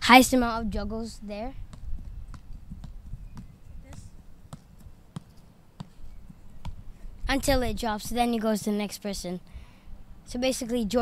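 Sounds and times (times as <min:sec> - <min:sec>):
feet tapping soccer ball: 0:01.6 - 0:08.8.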